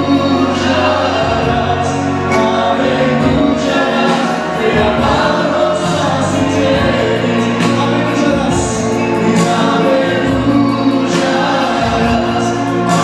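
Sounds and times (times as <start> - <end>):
congregation singing: 0.0 - 13.0
music: 0.0 - 13.0.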